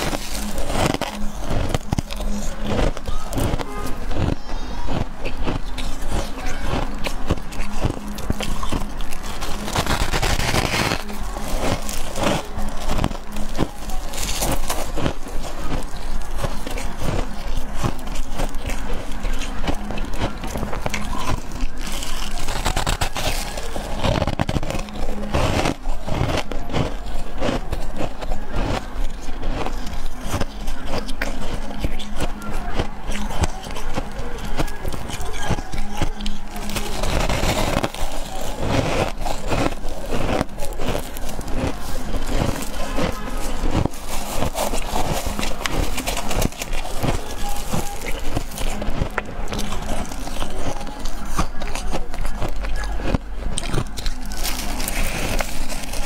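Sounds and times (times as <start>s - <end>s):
frost being chewed: 0.0s - 56.0s.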